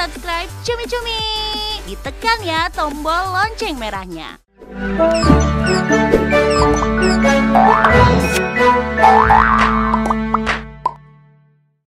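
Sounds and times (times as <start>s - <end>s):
upbeat cartoon jingle music: 4.7s - 10.6s.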